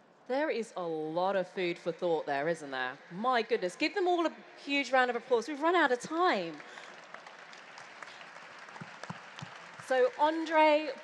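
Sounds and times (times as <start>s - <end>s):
audience applauding: 6.1s - 11.0s.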